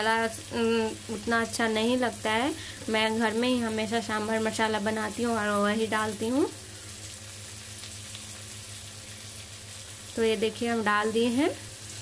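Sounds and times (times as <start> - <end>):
vegetables sizzling in oil: 0.0 - 12.0.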